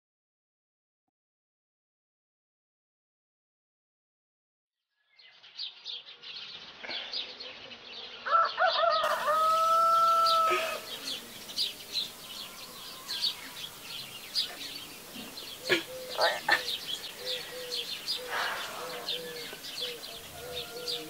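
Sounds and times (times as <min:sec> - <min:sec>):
small birds chirping: 0:04.9 - 0:21.0
rooster crowing: 0:08.2 - 0:11.2, 0:12.0 - 0:14.1, 0:17.2 - 0:21.0.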